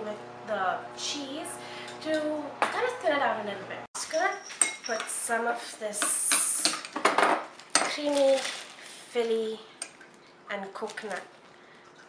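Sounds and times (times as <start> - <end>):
metal spoon scraping glass bowl: 4.0 - 5.1
plastic bag crinkling: 7.5 - 9.5, 10.7 - 11.4.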